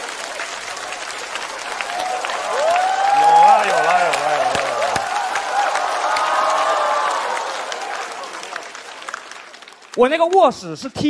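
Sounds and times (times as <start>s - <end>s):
audience applauding: 0.0s - 10.8s.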